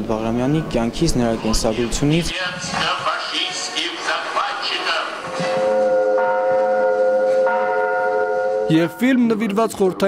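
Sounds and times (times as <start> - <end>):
man's voice: 1.4 - 5.3
sustained orchestral chord music: 5.6 - 9.5.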